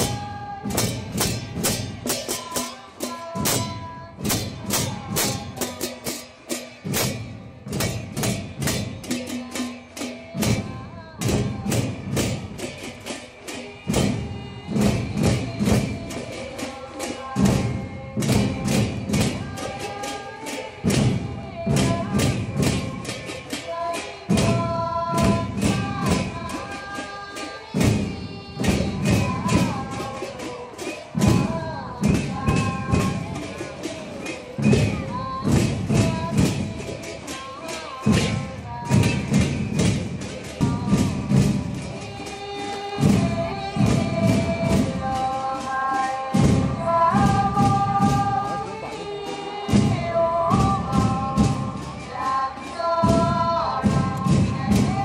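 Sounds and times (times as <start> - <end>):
drums: 0.0 - 55.0
hand cymbals: 0.0 - 55.0.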